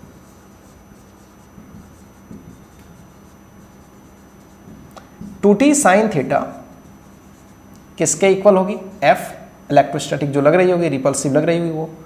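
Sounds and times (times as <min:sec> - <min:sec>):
marker pen writing on whiteboard: 0:00.0 - 0:08.3.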